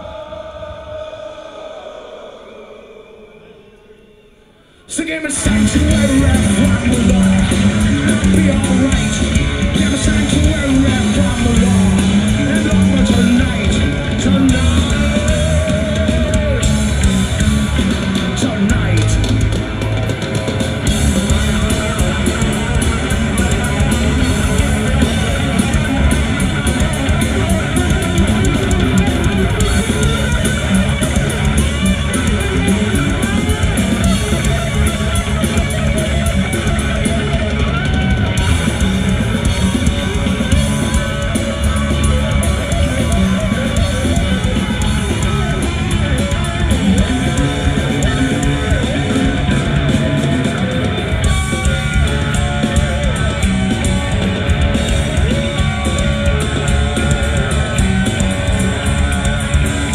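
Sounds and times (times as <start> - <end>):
distorted electric guitars: 0.0 - 59.9
bass guitar: 4.9 - 59.9
drum kit playing: 5.3 - 59.9.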